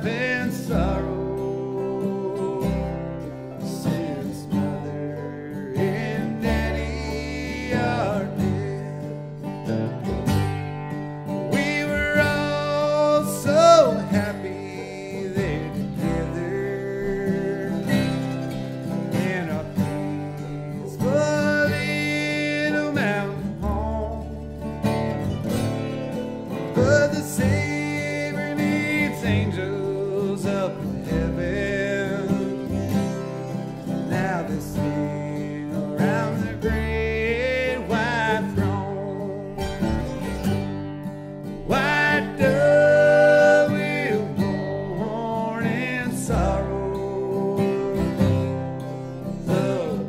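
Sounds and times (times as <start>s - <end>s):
bluegrass band playing: 0.0s - 50.0s
person singing long wavering notes: 11.5s - 24.5s, 26.7s - 40.3s, 41.7s - 50.0s.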